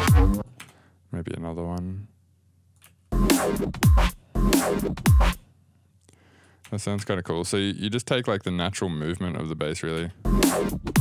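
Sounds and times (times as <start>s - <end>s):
gritty bass hits: 0.0s - 0.4s
kick drums thumping: 0.0s - 0.4s.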